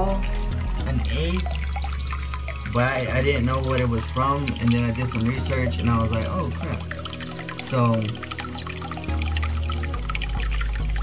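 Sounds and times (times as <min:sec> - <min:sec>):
water trickling and dripping: 0:00.0 - 0:11.0.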